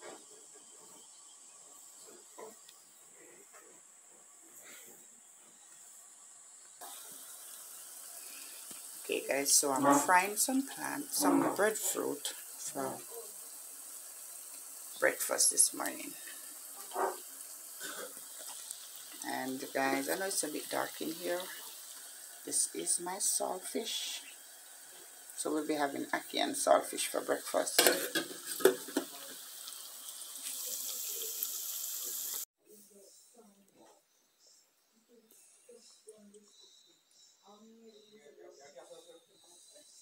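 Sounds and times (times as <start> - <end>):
food frying in oil: 6.0 - 32.5.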